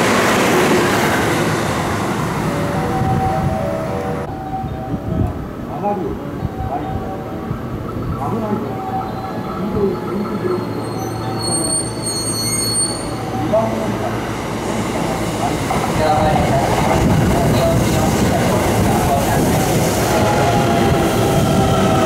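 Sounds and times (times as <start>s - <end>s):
electric train rumble: 0.0s - 22.0s
high squeal: 8.7s - 13.8s.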